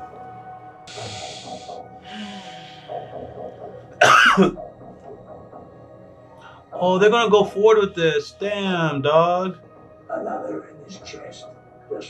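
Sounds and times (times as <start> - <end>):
faint background show audio: 6.6 - 12.0.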